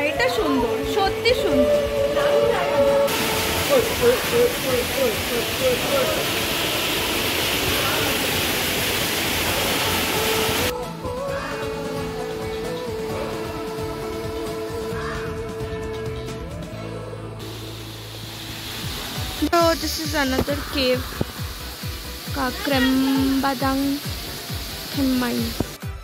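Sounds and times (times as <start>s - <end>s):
music with long held notes: 0.0s - 19.4s
steady rushing noise: 2.8s - 10.7s, 17.4s - 25.8s.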